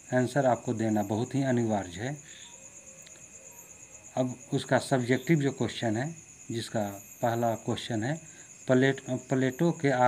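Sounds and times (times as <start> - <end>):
cricket chirring: 0.0 - 10.0
faint room hiss: 0.0 - 10.0.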